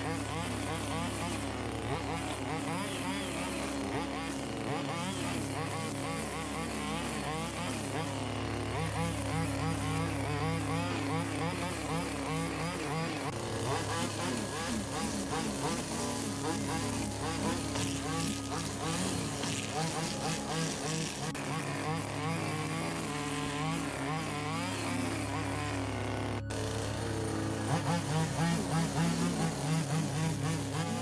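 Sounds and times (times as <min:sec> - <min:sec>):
string trimmer cutting grass: 0:00.0 - 0:31.0.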